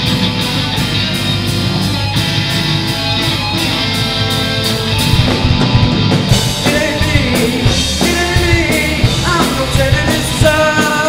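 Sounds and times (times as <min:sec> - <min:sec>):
amplified electric guitars: 0:00.0 - 0:11.0
drum kit: 0:00.0 - 0:11.0.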